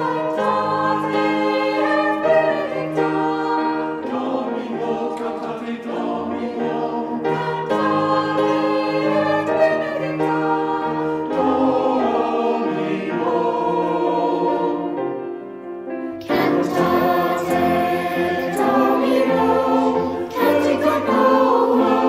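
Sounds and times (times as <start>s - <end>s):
choir singing: 0.0s - 22.0s.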